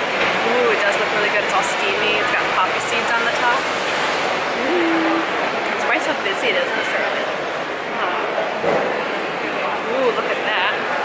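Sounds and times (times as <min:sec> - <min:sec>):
indistinct voices: 0:04.5 - 0:06.9.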